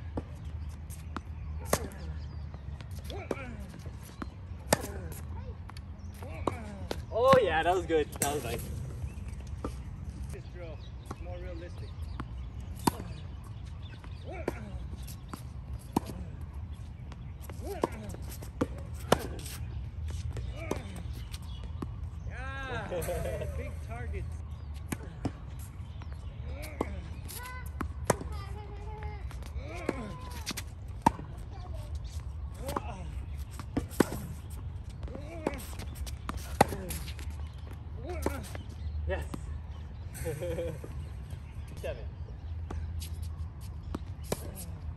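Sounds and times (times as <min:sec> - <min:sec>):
tennis ball bouncing on court: 0:04.1 - 0:07.4, 0:12.1 - 0:16.3, 0:17.1 - 0:22.0, 0:24.8 - 0:38.7.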